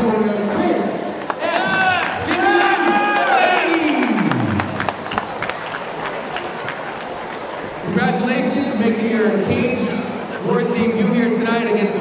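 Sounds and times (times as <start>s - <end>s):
scattered clapping: 1.2s - 7.6s
crowd cheering: 1.2s - 7.9s
shouted whoops: 1.4s - 4.1s.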